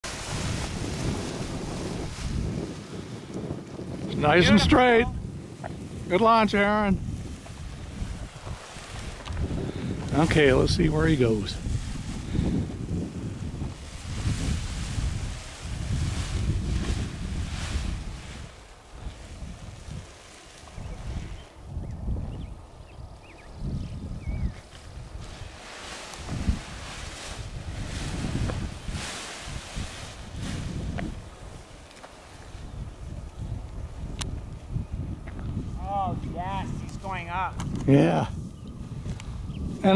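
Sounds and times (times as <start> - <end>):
wind buffeting microphone: 0.0 - 39.9.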